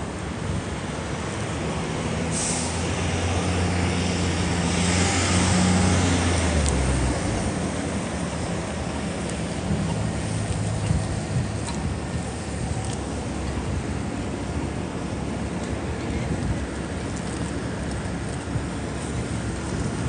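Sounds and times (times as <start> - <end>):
city traffic noise: 0.0 - 20.0
hiss: 2.2 - 2.9.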